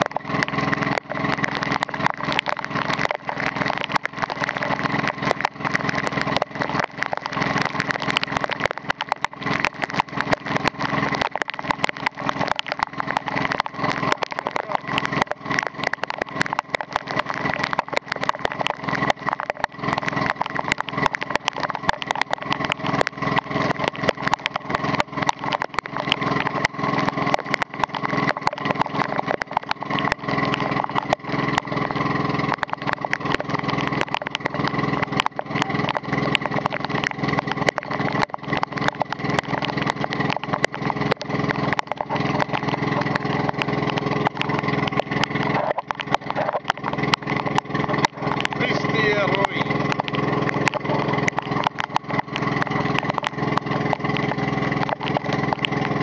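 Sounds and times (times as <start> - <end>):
boat engine running: 0.0 - 56.0
heavy rain hissing on river: 0.0 - 56.0
raindrops tapping on camera: 0.0 - 56.0.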